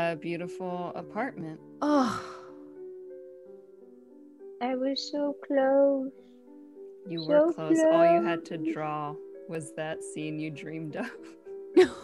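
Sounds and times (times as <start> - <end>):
soft background music: 0.0 - 12.0
woman's dismayed oh and sigh: 1.8 - 2.7.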